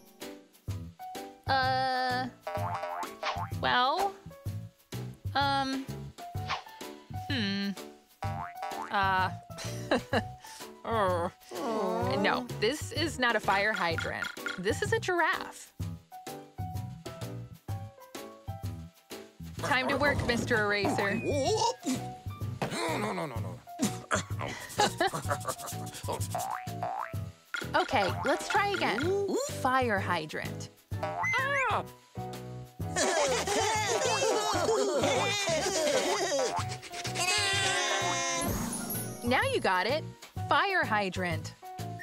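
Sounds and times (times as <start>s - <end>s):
bouncy children's music: 0.0s - 42.0s
eraser rubbing strokes: 24.8s - 26.4s, 35.4s - 37.6s
cartoon pitch slide sound effect: 31.0s - 31.8s.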